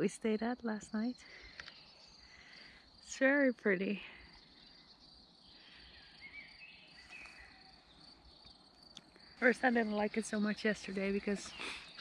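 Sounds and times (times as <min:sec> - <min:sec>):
faint chirps: 0:00.0 - 0:12.0
high-pitched insect trill: 0:00.2 - 0:12.0.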